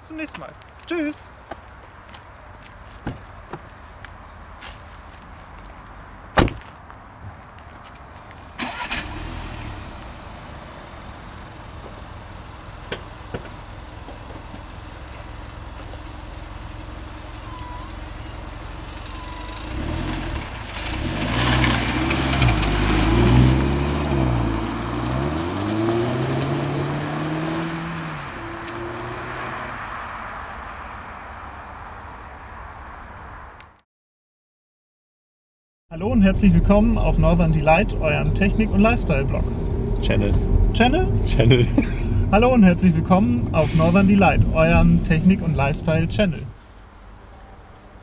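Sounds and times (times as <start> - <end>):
car engine starting and idling: 8.3 - 29.6, 36.0 - 46.6
car accelerating through gears: 19.1 - 30.2.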